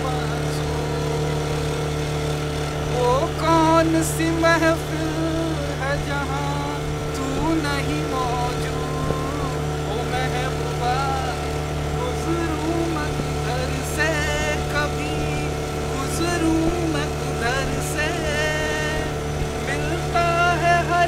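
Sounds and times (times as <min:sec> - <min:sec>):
man singing: 0:00.0 - 0:01.3, 0:02.9 - 0:21.0
boat motor droning: 0:00.0 - 0:21.0.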